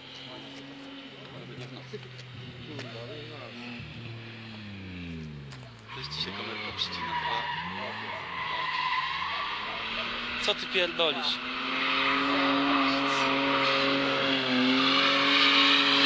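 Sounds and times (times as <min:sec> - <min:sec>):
car engine revving: 0:00.0 - 0:16.0
tyres squealing in a skid: 0:05.6 - 0:16.0.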